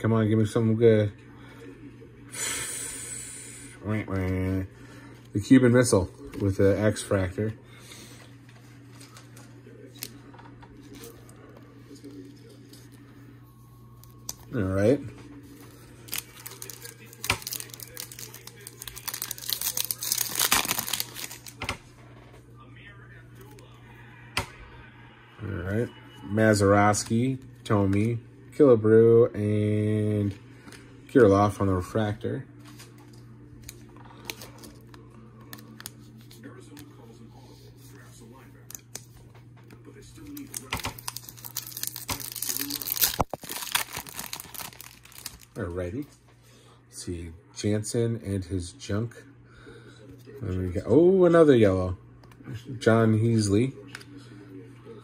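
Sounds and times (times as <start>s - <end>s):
foil wrapper crinkling and tearing: 14.0s - 21.8s, 33.6s - 36.8s, 40.2s - 45.7s.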